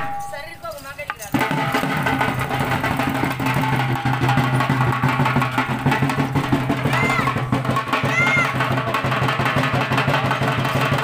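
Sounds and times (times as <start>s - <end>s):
barrel drums beaten with sticks: 0.0s - 11.0s.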